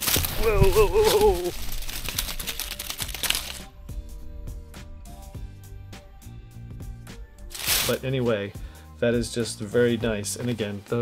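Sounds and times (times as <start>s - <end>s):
dry leaves crunching underfoot: 0.0s - 3.7s, 7.5s - 8.0s
soft background music: 0.0s - 11.0s.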